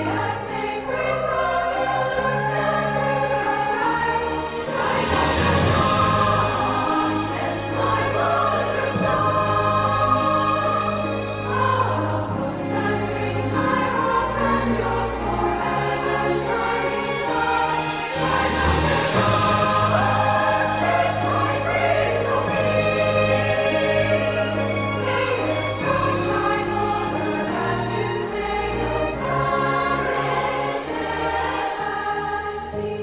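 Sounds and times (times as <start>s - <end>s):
choir singing sustained chords: 0.0s - 33.0s.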